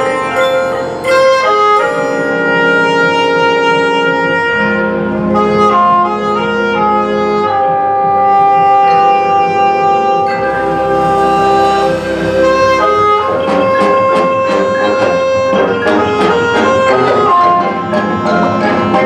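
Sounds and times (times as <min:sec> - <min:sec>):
marching band brass chords: 0:00.0 - 0:19.0.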